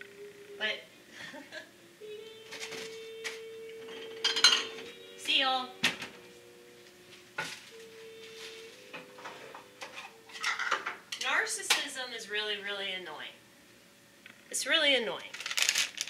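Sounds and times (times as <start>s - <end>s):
kitchen items clinking and clattering: 3.9s - 4.9s, 9.2s - 11.3s, 15.3s - 16.0s.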